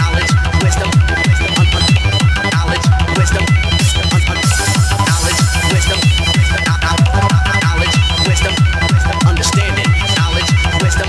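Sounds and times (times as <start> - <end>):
high synth melody: 0.0 - 10.4
fast kick drum: 0.0 - 11.0.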